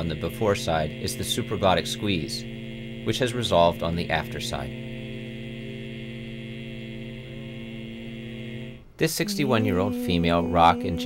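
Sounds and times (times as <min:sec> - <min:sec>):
man holding low vowel: 0:00.0 - 0:11.0.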